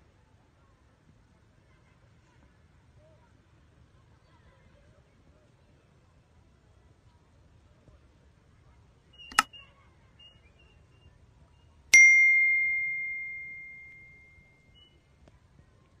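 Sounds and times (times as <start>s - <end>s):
bell ding: 12.0s - 14.4s.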